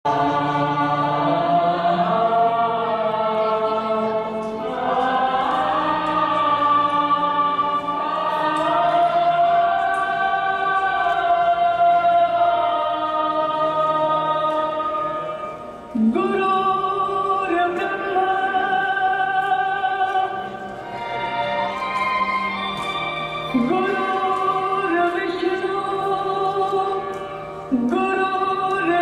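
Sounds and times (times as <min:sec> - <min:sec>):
choral singing: 0:00.0 - 0:29.0.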